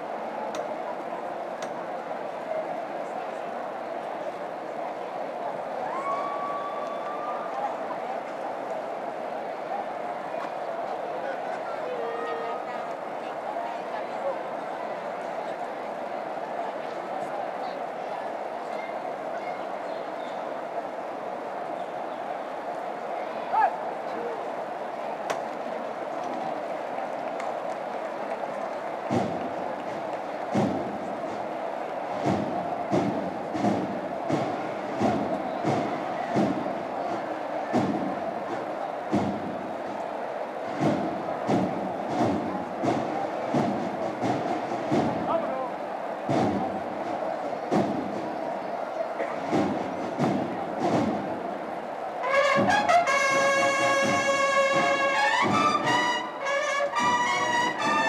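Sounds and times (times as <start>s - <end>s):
crowd murmur: 0.0s - 58.0s.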